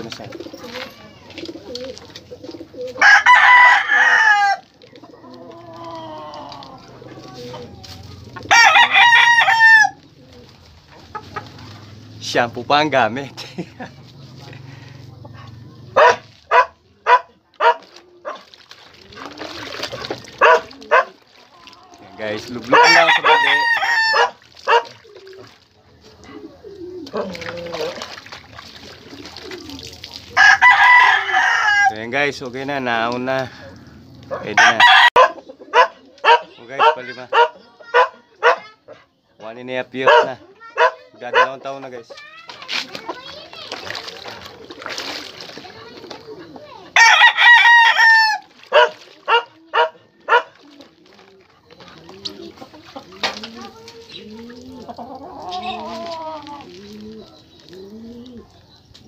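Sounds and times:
rooster crowing: 3.0s - 4.6s, 8.5s - 10.0s, 22.7s - 24.8s, 30.4s - 32.0s, 33.5s - 36.4s, 47.0s - 50.4s.

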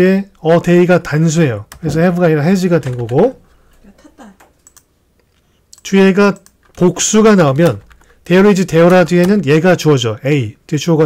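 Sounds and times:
keyboard typing clicks: 2.8s - 3.3s, 4.4s - 4.9s, 5.7s - 6.8s.

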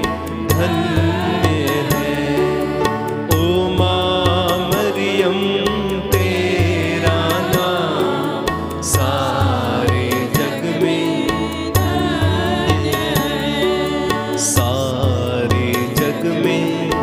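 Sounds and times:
percussion beat: 0.0s - 16.8s
bass: 0.0s - 17.0s
women singing a hymn: 0.5s - 3.0s, 6.4s - 14.5s.

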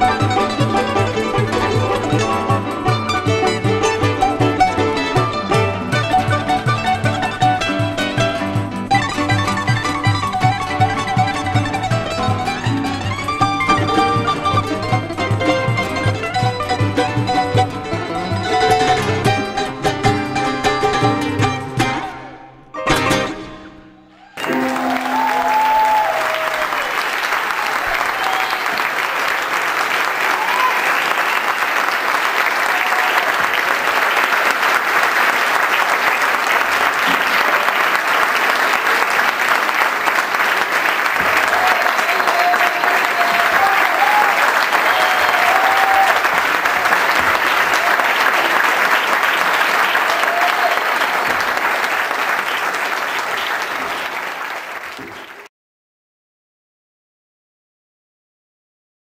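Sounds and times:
audience applauding: 0.0s - 19.4s, 24.1s - 55.5s.

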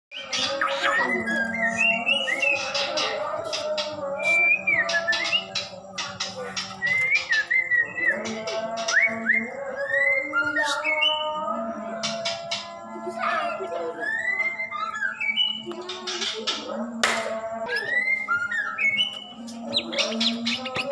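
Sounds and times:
bird whistling song: 0.1s - 20.9s.

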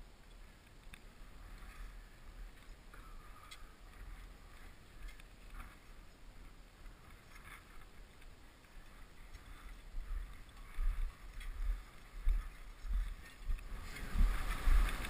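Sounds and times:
wind buffeting microphone: 8.7s - 15.0s.

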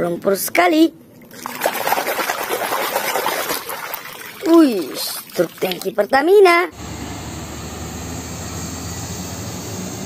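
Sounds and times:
water splashing and trickling: 1.1s - 6.6s.

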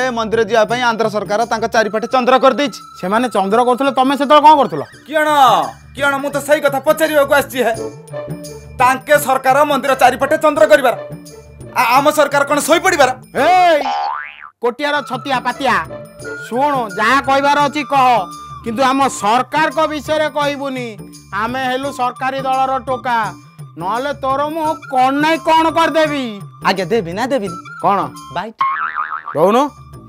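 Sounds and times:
background music: 0.0s - 13.9s, 14.7s - 30.0s
comic boing sound effect: 13.8s - 14.6s, 28.6s - 29.5s.

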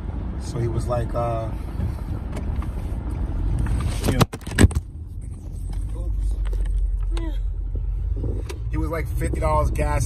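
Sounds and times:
car engine rumble from inside: 0.0s - 10.0s.

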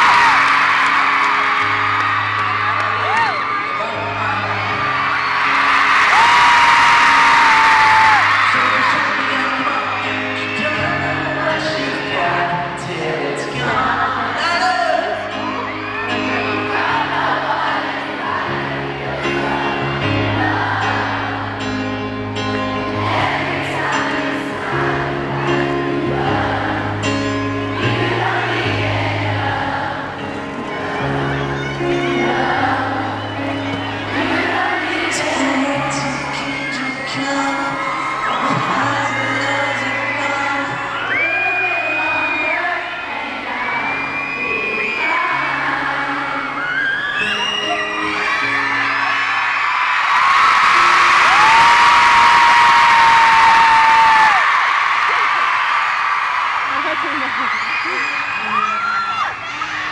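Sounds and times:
crowd screaming and cheering: 0.0s - 59.9s
piano ballad: 0.0s - 59.9s
person singing: 6.9s - 21.7s, 23.4s - 48.6s.

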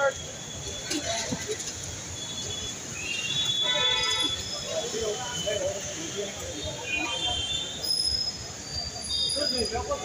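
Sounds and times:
traffic: 0.0s - 10.0s.

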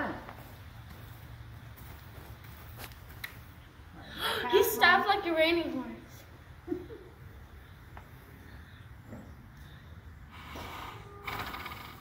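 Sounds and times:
horse snorting: 10.4s - 12.0s.

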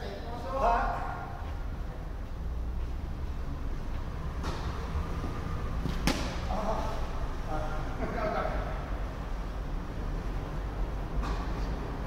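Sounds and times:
tennis racket striking ball: 5.9s - 6.5s.

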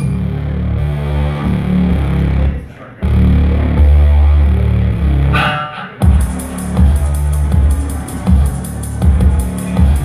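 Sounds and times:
deep bass line: 0.0s - 10.0s
high ringing tone: 5.4s - 6.0s.

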